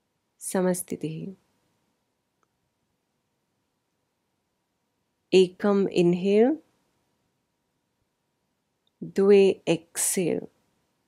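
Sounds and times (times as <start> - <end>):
woman speaking: 0.4 - 1.4, 5.4 - 6.6, 9.0 - 10.5.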